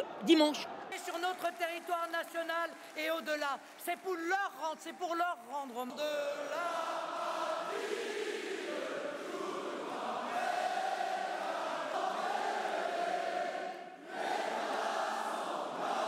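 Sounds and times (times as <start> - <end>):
crowd chanting in unison: 0.0 - 1.2, 6.0 - 16.0.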